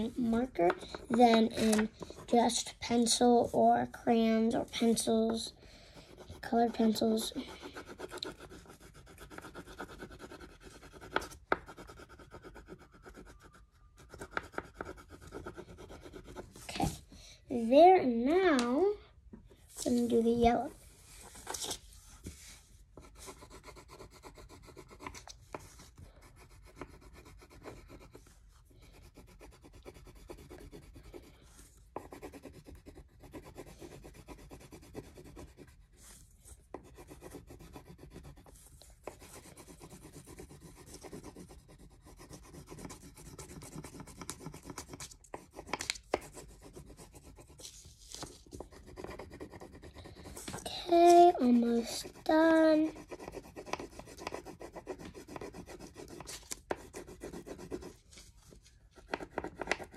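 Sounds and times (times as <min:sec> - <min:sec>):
crayon rubbing on paper: 0:04.6 - 0:17.0, 0:19.8 - 0:59.9.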